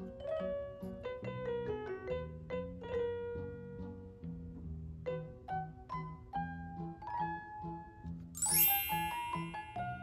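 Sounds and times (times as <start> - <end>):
light bouncy background music: 0.0 - 10.0
bright twinkling chime: 8.4 - 10.0.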